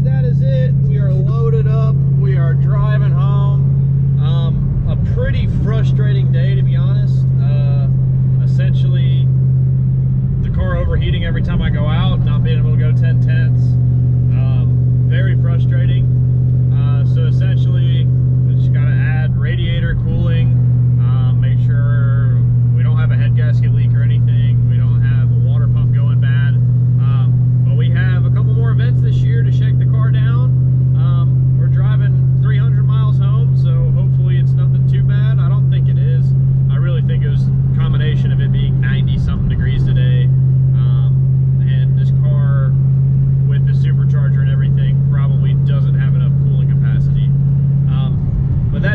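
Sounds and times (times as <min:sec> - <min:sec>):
car engine drone inside cabin: 0:00.0 - 0:48.9.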